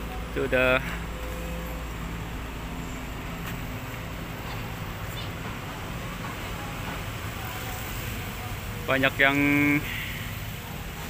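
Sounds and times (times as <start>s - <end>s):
distant motor engines droning: 0.0s - 11.0s.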